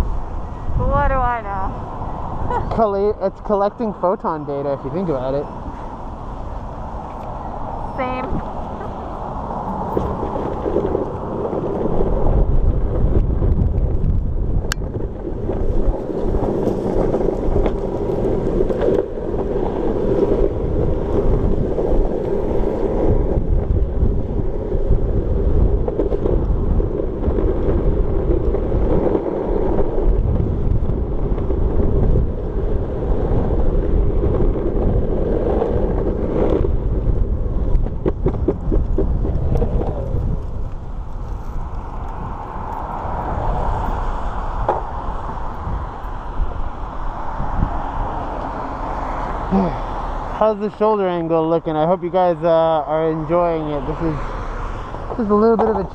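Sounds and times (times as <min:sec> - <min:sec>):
wind buffeting microphone: 0:00.0 - 0:55.9.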